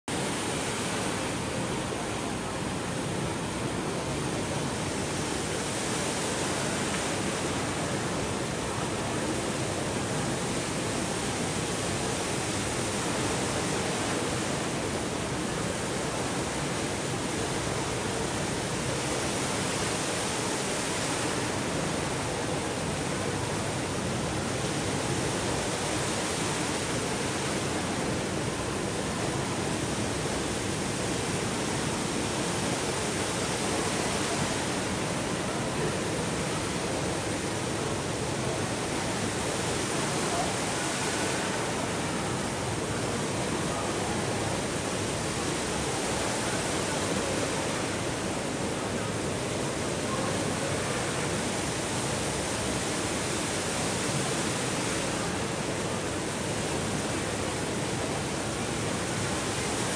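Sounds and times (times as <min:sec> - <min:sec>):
indoor waterfall rushing: 0:00.0 - 0:59.9.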